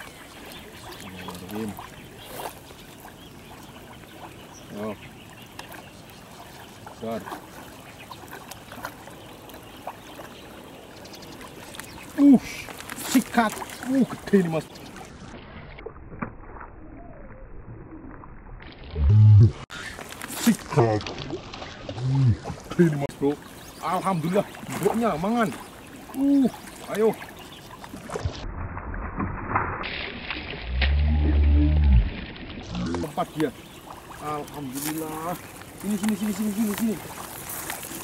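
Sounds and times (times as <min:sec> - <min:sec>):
ambient water noise: 0:00.0 - 0:38.0.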